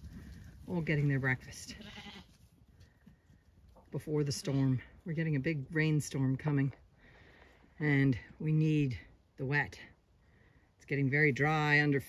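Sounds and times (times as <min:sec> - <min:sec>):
sheep bleating: 0:01.7 - 0:02.4.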